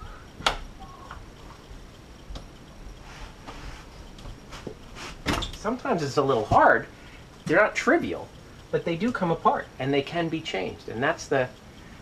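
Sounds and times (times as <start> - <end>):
faint clicks and taps: 0.0 - 11.9.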